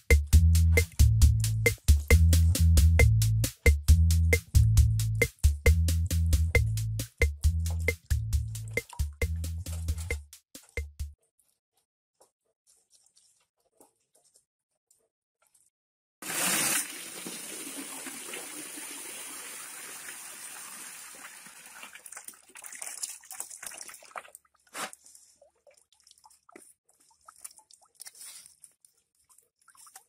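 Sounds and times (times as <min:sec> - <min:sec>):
water splashing and dripping: 0:07.0 - 0:10.9, 0:16.2 - 0:30.0
water pouring from basin: 0:16.2 - 0:24.4.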